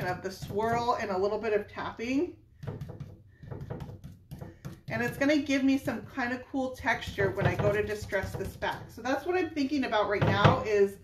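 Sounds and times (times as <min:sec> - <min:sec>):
paintbrush tapping and brushing: 0:02.6 - 0:06.1.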